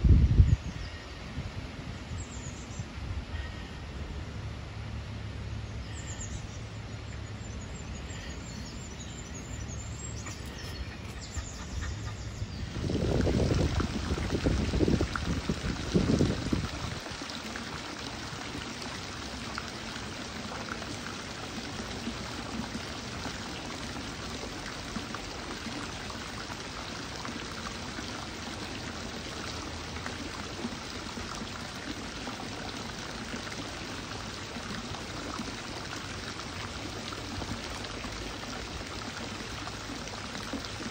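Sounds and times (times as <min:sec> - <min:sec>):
water pouring and splashing: 0:08.2 - 0:40.9.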